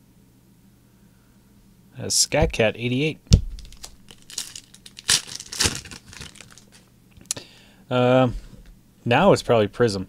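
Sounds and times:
trading cards rustling: 3.4 - 6.8.

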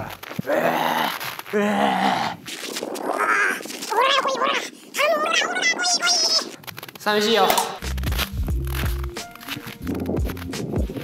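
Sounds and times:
man's silly wordless cries: 3.2 - 6.4.

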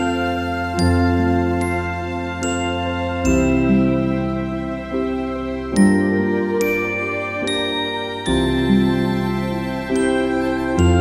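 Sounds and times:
bell-like lullaby melody: 0.0 - 11.0.

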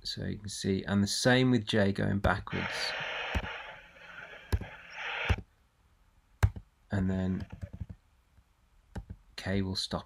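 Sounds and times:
reversed audio rustling hiss: 2.4 - 5.6, 6.9 - 8.0.

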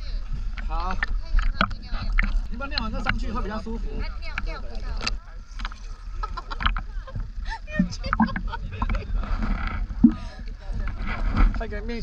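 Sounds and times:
wind on microphone: 6.6 - 12.0.

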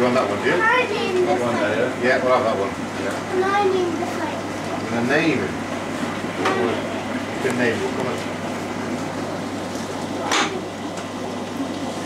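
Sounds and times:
aquarium water rushing: 0.0 - 12.0
low electrical hum: 0.0 - 12.0.

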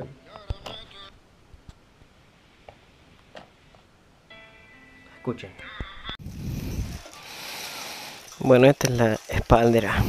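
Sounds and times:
plastic wrapping rustling in box: 6.2 - 10.0.

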